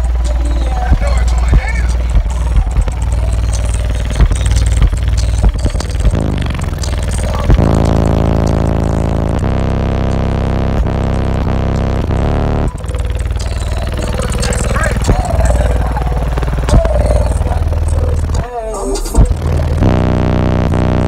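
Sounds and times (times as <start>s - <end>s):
sustained deep bass note: 0.0s - 18.5s, 19.2s - 21.0s
kick-drum beat: 0.0s - 21.0s
loud bass-heavy music: 0.0s - 21.0s.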